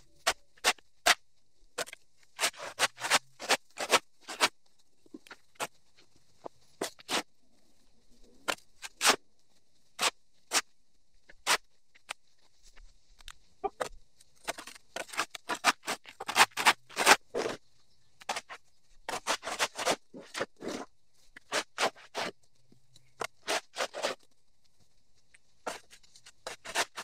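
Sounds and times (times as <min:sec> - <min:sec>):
shovel scraping dirt on concrete: 0:01.8 - 0:04.5, 0:14.5 - 0:17.6, 0:18.2 - 0:22.3, 0:23.2 - 0:24.2, 0:25.7 - 0:27.0.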